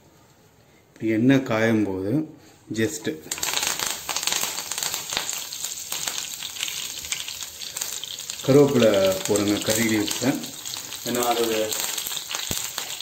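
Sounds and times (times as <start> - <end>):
leaves frying in oil: 3.2 - 13.0.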